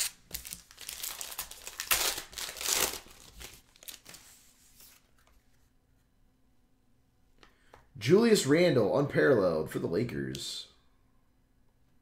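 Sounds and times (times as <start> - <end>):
foil wrapper tearing and crinkling: 0.0 - 4.2.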